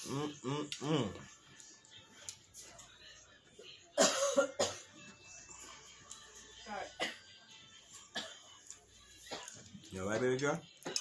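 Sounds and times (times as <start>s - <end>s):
person humming: 0.0s - 1.3s
faint background music: 0.0s - 11.0s
quiet eating sounds: 0.0s - 11.0s.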